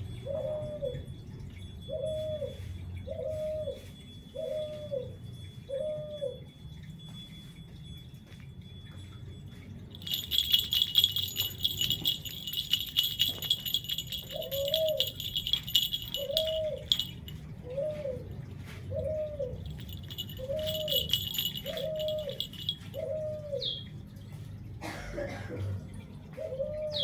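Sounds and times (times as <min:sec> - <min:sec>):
dove cooing: 0:00.2 - 0:01.0, 0:01.9 - 0:03.8, 0:04.4 - 0:06.4, 0:10.0 - 0:18.3, 0:18.9 - 0:23.8, 0:26.3 - 0:27.0
high ringing with fast clicking: 0:07.0 - 0:17.6, 0:19.6 - 0:23.2.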